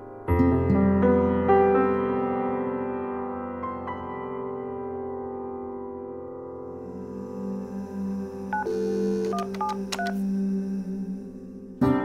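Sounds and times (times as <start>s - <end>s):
background music: 0.0s - 12.0s
telephone keypad beeps: 8.6s - 10.2s.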